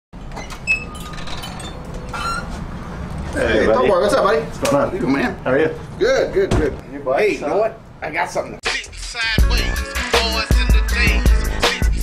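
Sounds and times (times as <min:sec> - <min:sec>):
door bell jingling: 0:00.7 - 0:02.3.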